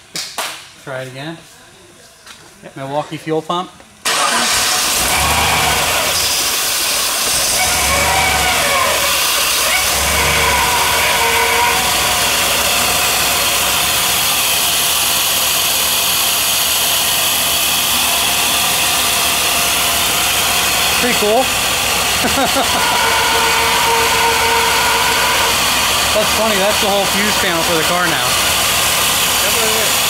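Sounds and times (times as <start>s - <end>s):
truck engine running loud: 4.1s - 30.0s.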